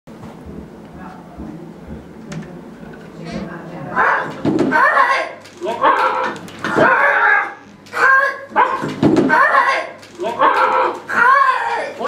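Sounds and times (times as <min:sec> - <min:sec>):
person making bark-like calls: 0:04.0 - 0:12.0.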